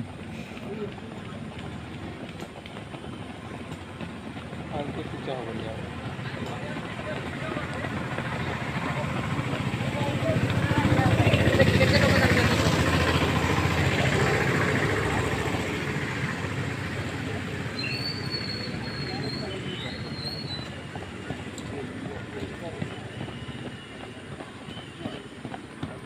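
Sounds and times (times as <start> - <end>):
vehicle passing rumble: 0.0 - 26.0.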